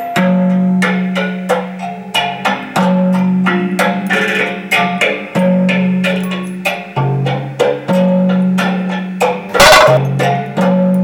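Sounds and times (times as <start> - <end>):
thumb piano plucked notes: 0.0 - 11.0.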